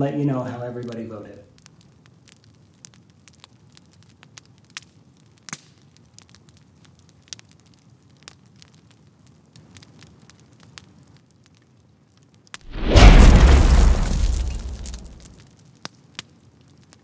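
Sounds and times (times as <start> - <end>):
crackling clicks and pops: 0.8 - 17.0.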